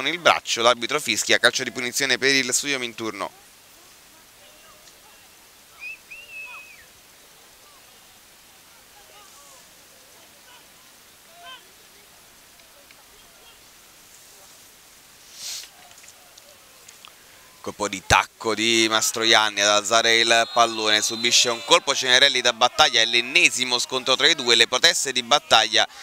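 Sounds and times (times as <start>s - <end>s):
steady background hiss: 0.0s - 26.0s
distant shouts of players: 18.7s - 25.8s.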